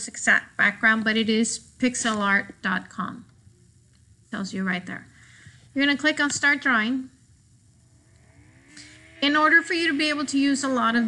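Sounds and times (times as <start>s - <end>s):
faint low background hum: 0.0s - 11.0s.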